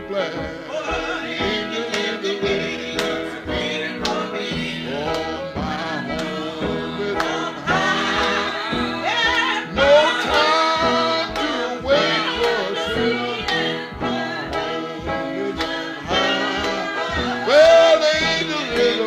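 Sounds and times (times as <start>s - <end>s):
man singing: 0.0s - 8.6s, 9.6s - 13.9s, 14.6s - 19.0s.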